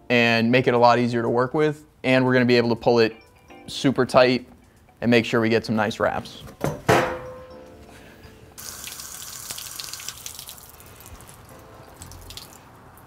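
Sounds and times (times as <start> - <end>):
water running from hose: 8.6 - 13.0.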